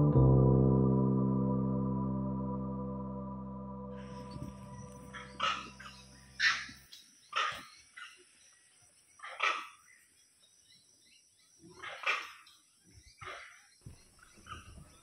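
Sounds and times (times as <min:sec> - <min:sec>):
soft background music: 0:00.0 - 0:06.6
animal barking calls: 0:04.1 - 0:08.3, 0:09.2 - 0:09.9, 0:11.6 - 0:12.5.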